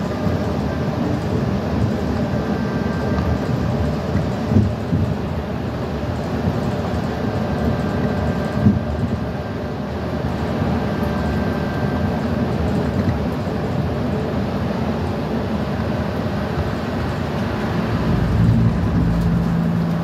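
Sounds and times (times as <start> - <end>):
bus engine and road rumble: 0.0 - 20.0.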